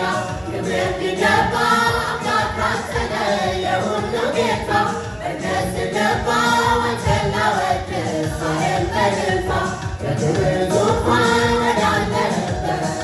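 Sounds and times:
women's choir singing: 0.0s - 13.0s.

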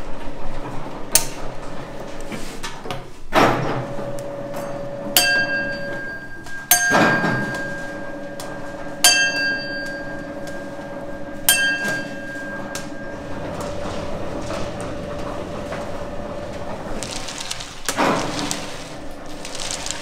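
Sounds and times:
candy machine humming: 9.6s - 20.0s.

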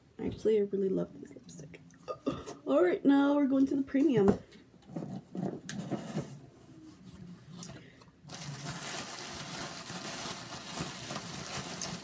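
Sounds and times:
packaging rustling: 8.2s - 12.0s.

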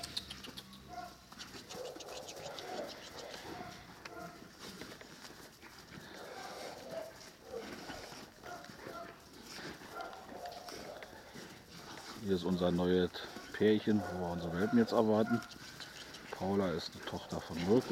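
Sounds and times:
dogs growling: 0.0s - 4.8s, 5.8s - 17.9s
dogs scuffling in snow: 0.9s - 17.9s.

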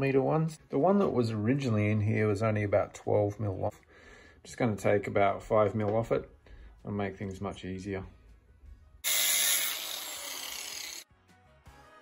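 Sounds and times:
power tool grinding steel: 9.0s - 11.0s.

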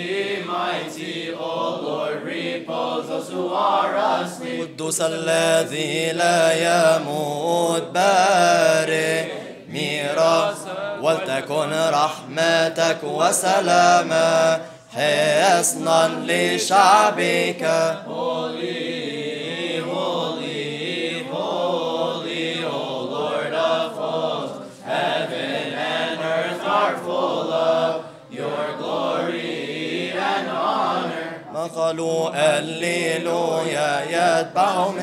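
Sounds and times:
group chanting a hymn: 0.0s - 35.0s.

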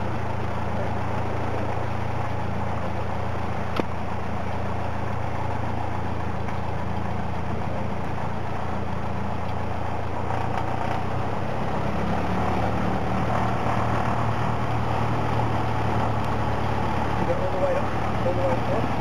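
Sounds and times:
aircraft piston engine idling: 0.0s - 10.6s, 13.2s - 19.0s.

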